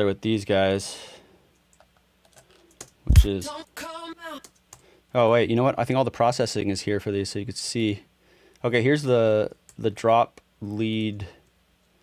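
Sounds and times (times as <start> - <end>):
computer keyboard clicks: 1.5 - 3.0, 4.4 - 4.8.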